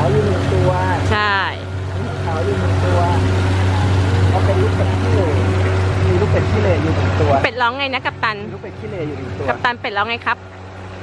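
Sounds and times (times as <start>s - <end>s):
fountain splashing: 0.0s - 11.0s.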